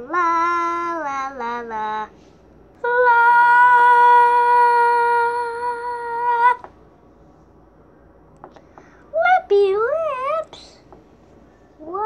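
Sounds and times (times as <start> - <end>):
child singing a long note: 0.0 - 2.1, 2.8 - 6.6.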